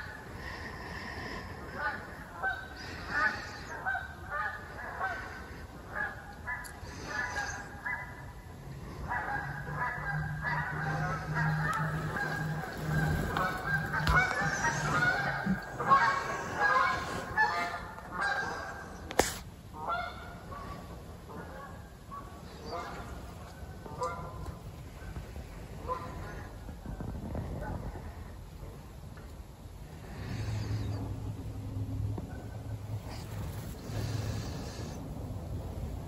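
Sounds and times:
flock of birds calling: 0.0 - 19.2, 22.1 - 25.2
low steady hum: 0.0 - 36.0.

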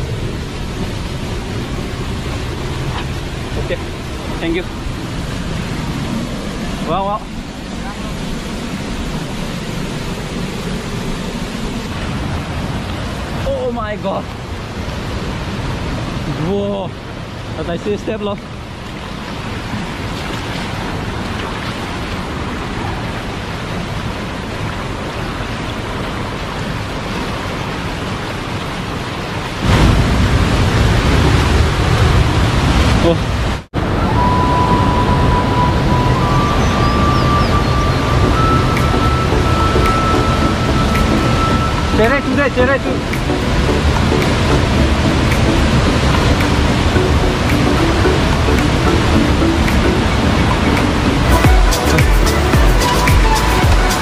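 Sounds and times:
stream water rushing over rocks: 0.0 - 54.0
splashing of wading: 18.4 - 33.1
deep rushing noise: 29.6 - 54.0
high steady tone: 33.8 - 54.0.

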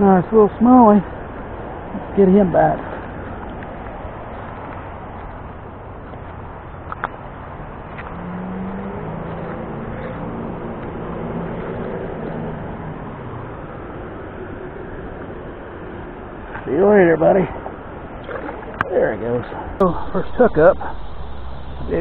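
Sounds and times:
vehicle engine hum: 0.0 - 18.9, 19.5 - 22.0
flowing river water: 0.0 - 22.0.

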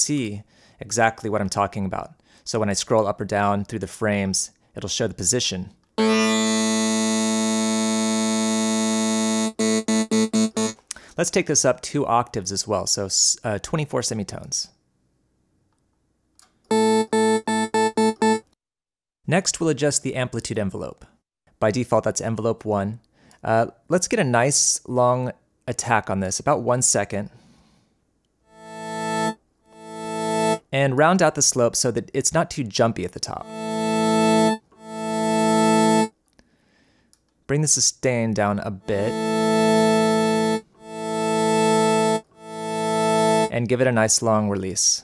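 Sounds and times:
bright buzzy synth notes: 6.0 - 10.8, 16.7 - 18.5, 28.5 - 30.6, 33.4 - 36.1, 38.8 - 43.5.

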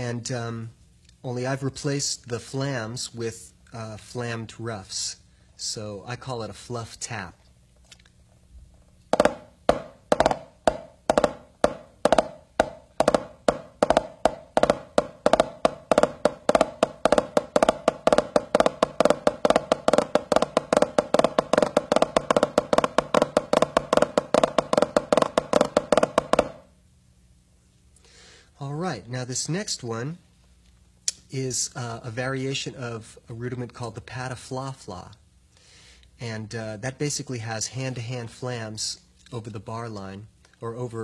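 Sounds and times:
drumsticks playing drum rudiment: 9.0 - 26.7.

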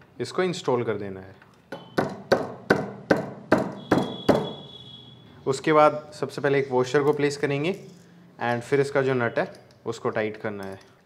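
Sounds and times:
sharp metallic knocks: 1.7 - 4.7.

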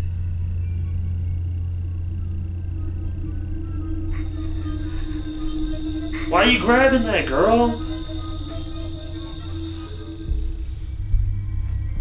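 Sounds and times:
low rumbling drone: 0.0 - 12.0
faint thin high tone: 4.2 - 10.9.

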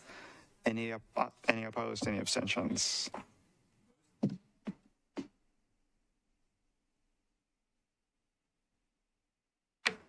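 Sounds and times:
person speaking: 0.6 - 3.4.

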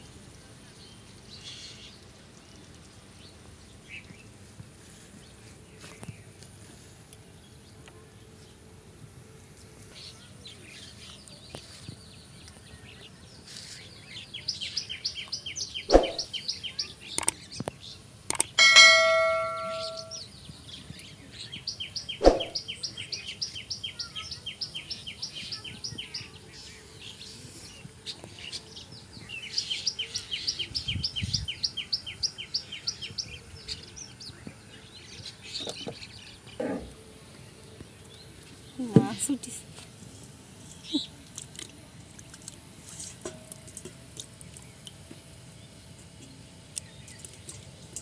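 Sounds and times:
bird chirping trills: 14.6 - 17.5, 18.3 - 20.5, 21.6 - 26.3
metallic ding: 18.6 - 20.2.

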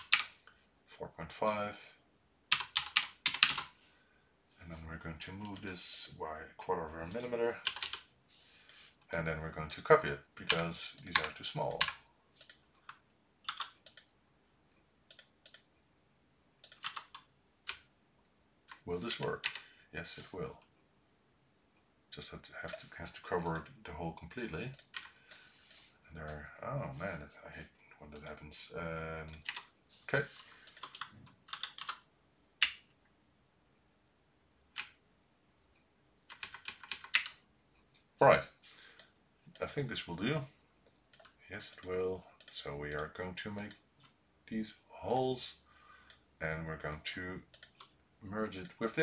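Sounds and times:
keyboard and mouse clicks: 0.0 - 0.5, 10.5 - 14.1, 14.7 - 15.7, 16.6 - 17.9, 30.4 - 33.0, 36.3 - 37.4, 46.9 - 48.8.

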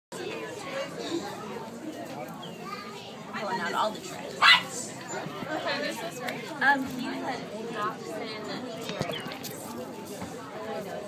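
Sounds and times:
people chattering: 0.1 - 11.0.

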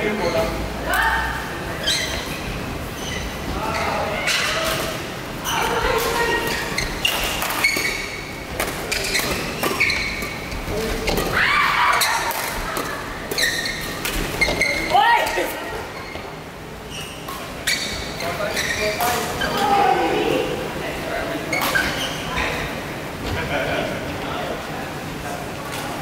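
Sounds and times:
shoes squeaking on floor: 1.7 - 20.0, 21.5 - 22.7.

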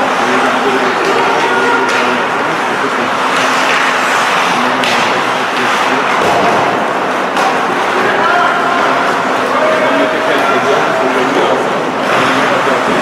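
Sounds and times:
arena crowd noise: 0.0 - 13.0
faint indistinct voices: 0.0 - 13.0.

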